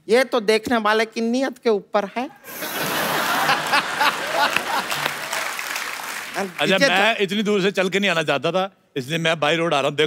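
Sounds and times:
audience applauding: 0:02.5 - 0:07.2.

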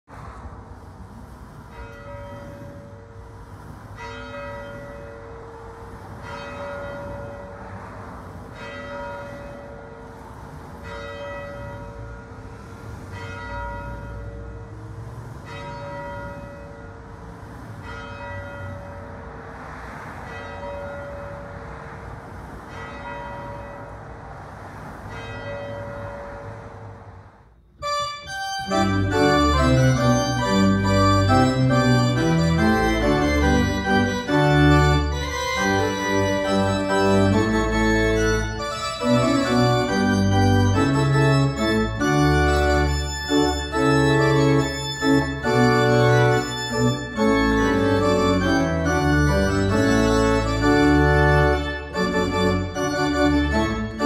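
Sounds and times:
church bell tolling: 0:01.7 - 0:03.3, 0:04.0 - 0:17.2, 0:17.8 - 0:19.4, 0:20.2 - 0:21.8, 0:22.7 - 0:24.1, 0:25.1 - 0:26.7, 0:27.8 - 0:54.0
organ playing chords: 0:27.8 - 0:54.0.

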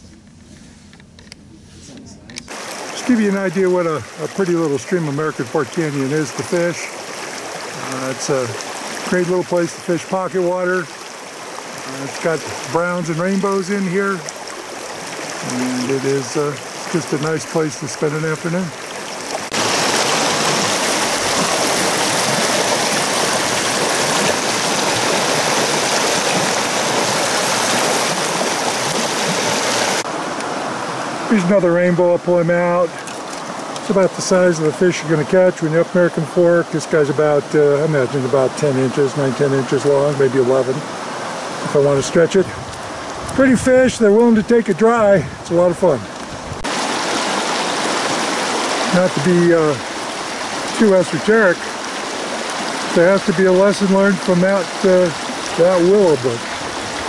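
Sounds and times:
stream rushing over stones: 0:02.5 - 0:57.0.

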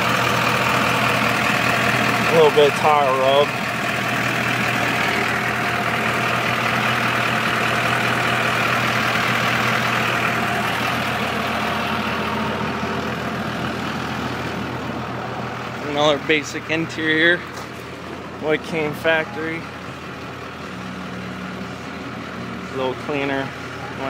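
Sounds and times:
diesel truck engine idling: 0:00.0 - 0:24.0.

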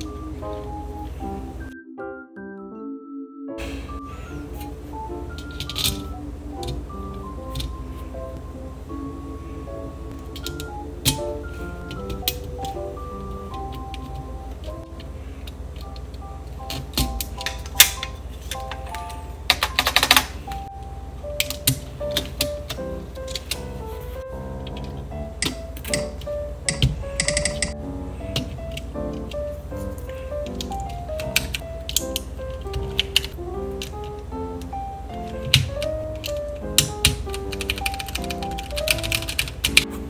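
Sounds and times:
light background music: 0:00.0 - 0:40.0
mechanical keyboard parts clicking: 0:15.4 - 0:20.4, 0:24.6 - 0:27.8, 0:30.4 - 0:34.2, 0:35.3 - 0:39.9
mechanical keyboard clicks: 0:35.4 - 0:39.9.

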